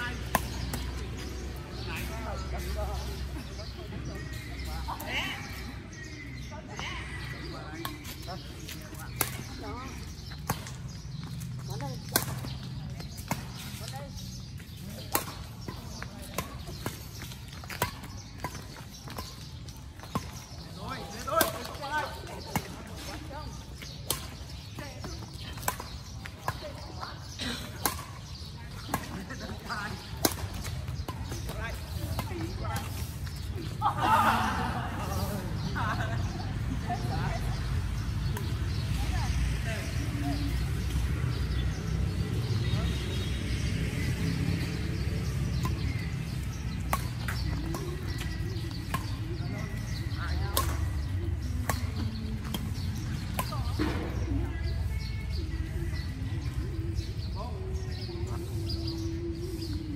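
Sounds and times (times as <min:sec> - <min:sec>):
badminton rackets hitting shuttlecock: 0:27.7 - 0:31.5.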